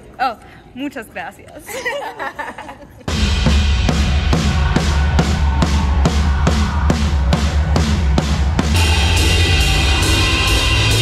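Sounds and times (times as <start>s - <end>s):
drum kit steady beat: 3.1s - 11.0s
sustained deep bass: 3.1s - 11.0s.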